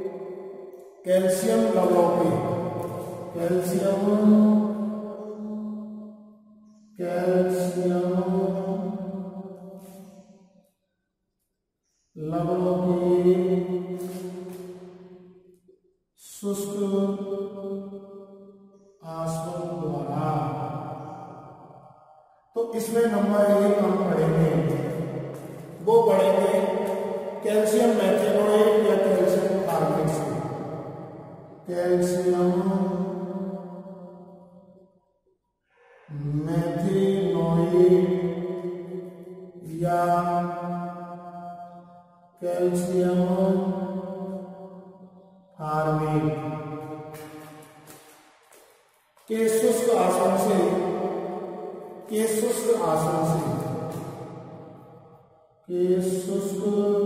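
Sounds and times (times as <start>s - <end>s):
man chanting words: 1.1s - 5.8s, 7.0s - 9.1s, 12.2s - 14.8s, 16.2s - 17.7s, 19.0s - 20.7s, 22.6s - 30.7s, 31.6s - 33.4s, 35.8s - 38.6s, 39.6s - 40.8s, 42.4s - 44.0s, 45.6s - 46.5s, 49.2s - 51.0s, 52.0s - 54.2s, 55.7s - 57.0s.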